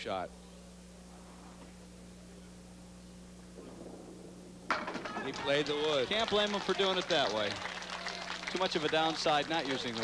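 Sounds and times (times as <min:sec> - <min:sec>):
bowling ball rolling down lane: 0:03.6 - 0:06.0.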